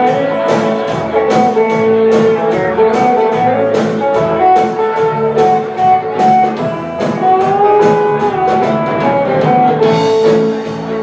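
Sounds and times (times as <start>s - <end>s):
live band playing: 0.0s - 11.0s
steady drum beat: 0.0s - 11.0s.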